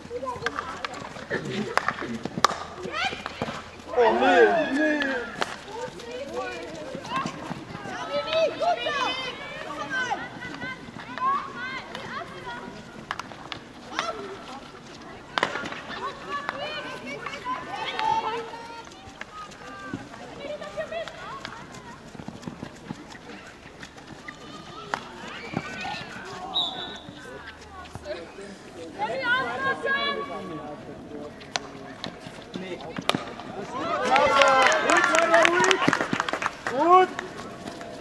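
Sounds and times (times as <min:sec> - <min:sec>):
hockey sticks striking ball: 0:00.3 - 0:03.8, 0:15.3 - 0:18.4, 0:31.5 - 0:34.2
players and spectators shouting: 0:02.8 - 0:12.8, 0:33.6 - 0:36.0.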